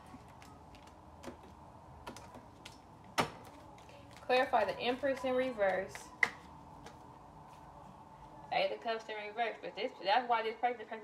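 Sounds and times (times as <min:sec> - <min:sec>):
cards clicking and tapping: 0:00.0 - 0:07.1.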